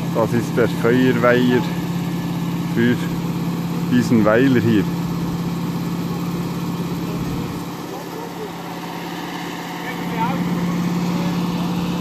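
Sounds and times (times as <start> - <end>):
motor pump engine humming: 0.0 - 12.0.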